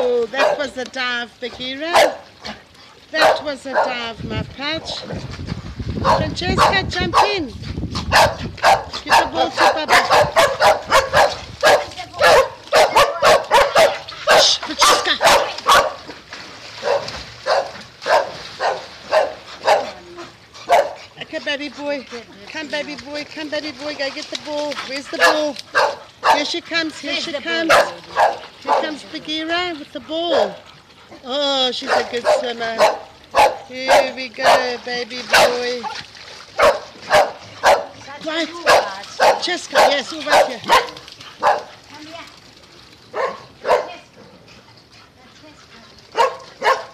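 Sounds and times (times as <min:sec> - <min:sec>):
dog yapping: 0:08.1 - 0:16.0, 0:16.8 - 0:19.9, 0:25.2 - 0:26.4, 0:36.6 - 0:37.9, 0:38.7 - 0:41.7, 0:46.2 - 0:46.9.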